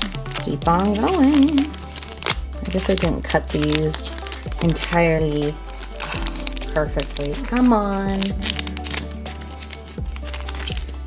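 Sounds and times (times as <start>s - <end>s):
background music: 0.0s - 11.0s
foil pack crinkling: 0.0s - 11.0s.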